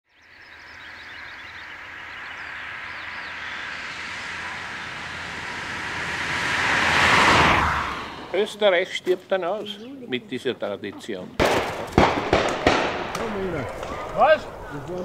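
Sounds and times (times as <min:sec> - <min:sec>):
car passing on road: 0:00.1 - 0:09.0.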